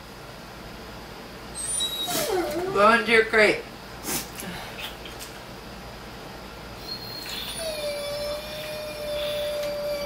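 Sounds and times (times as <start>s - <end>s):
dog whining: 1.5s - 3.0s, 6.8s - 10.0s.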